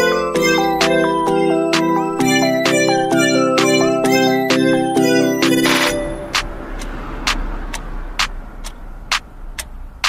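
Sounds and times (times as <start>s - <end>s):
music: 0.0s - 8.4s
regular ticking: 0.0s - 10.0s.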